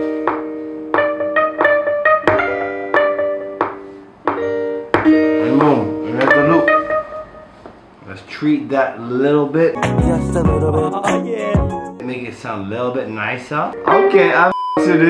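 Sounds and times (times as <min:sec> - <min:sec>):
guitar chords: 0:00.0 - 0:07.9, 0:09.7 - 0:12.2, 0:13.7 - 0:15.0
person's voice: 0:05.4 - 0:06.8.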